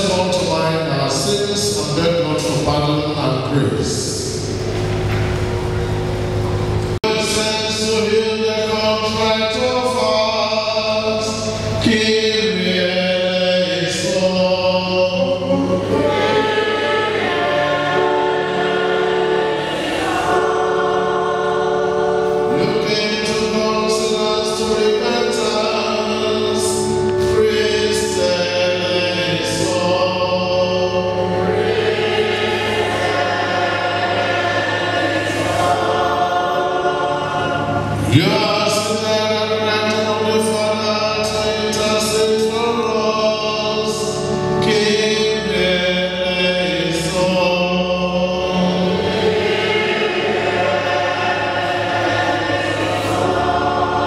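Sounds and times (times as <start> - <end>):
choir singing slow song: 0.0 - 54.0.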